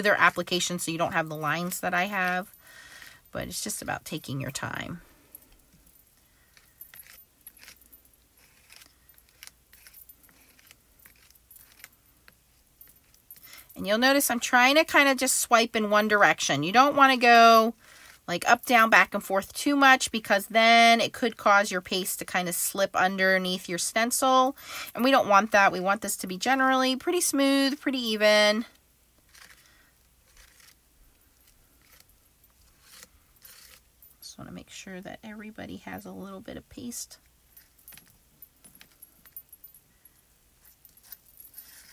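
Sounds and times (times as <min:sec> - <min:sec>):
spatula scraping on stencil: 0:29.3 - 0:30.8, 0:31.4 - 0:33.9.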